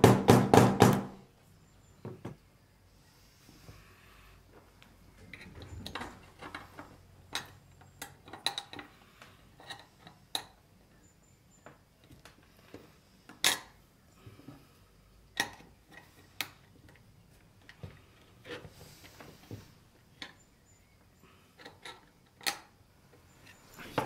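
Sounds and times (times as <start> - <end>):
metal lock parts clicking: 21.6 - 22.8.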